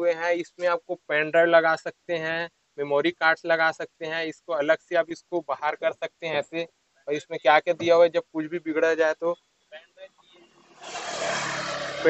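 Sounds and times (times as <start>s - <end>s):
vehicle passing close by: 10.6s - 12.0s.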